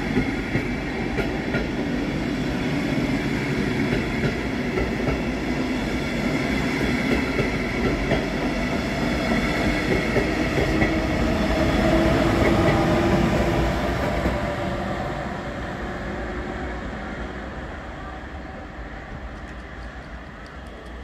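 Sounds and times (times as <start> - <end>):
train wheels on rail: 0.0 - 21.0.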